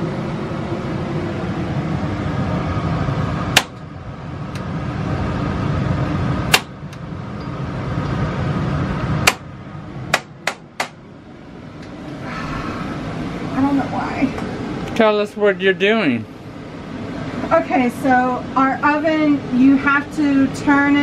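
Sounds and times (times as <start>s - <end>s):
steady low rumble: 0.0s - 21.0s
gas oven igniter clicking: 6.5s - 7.0s.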